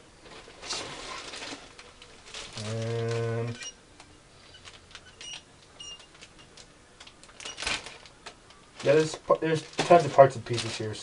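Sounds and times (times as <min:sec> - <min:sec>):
plastic bags crinkling: 0:00.2 - 0:03.6, 0:04.4 - 0:11.0.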